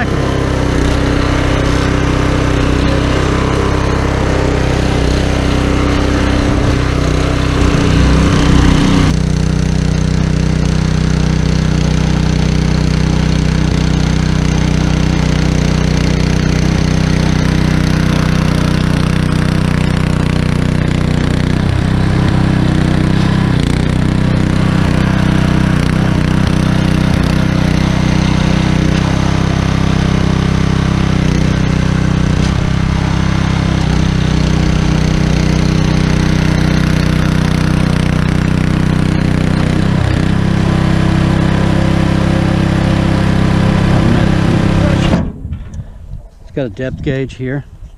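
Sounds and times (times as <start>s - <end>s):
tines churning soil: 0.0s - 45.2s
tiller engine running: 0.0s - 45.7s.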